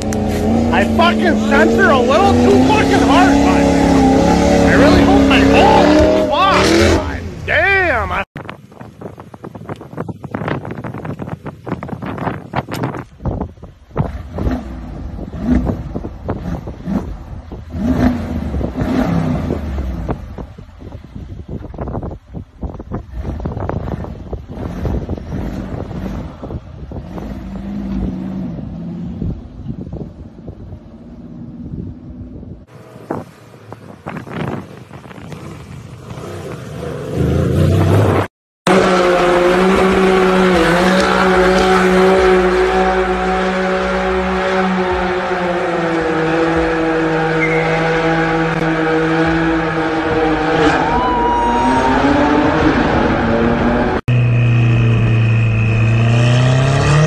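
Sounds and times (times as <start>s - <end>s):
engine revving in bursts: 0.0s - 7.3s, 14.1s - 20.2s, 51.6s - 57.0s
car engine at high revs: 0.0s - 7.8s, 13.8s - 21.1s, 22.8s - 57.0s
wheels spinning in sand: 32.7s - 38.2s.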